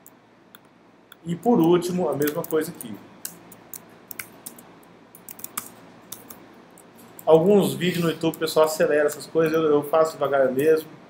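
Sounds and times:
keyboard typing clicks: 0:00.0 - 0:07.4.

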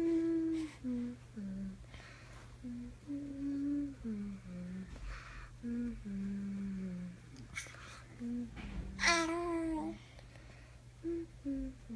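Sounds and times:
person humming slow tune: 0:00.0 - 0:02.0, 0:02.6 - 0:10.0, 0:11.0 - 0:11.9
steady low hum: 0:00.0 - 0:11.9.

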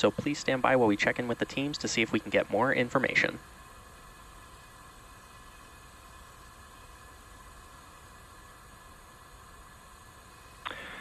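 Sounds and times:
audio channel hiss: 0:00.0 - 0:11.0.

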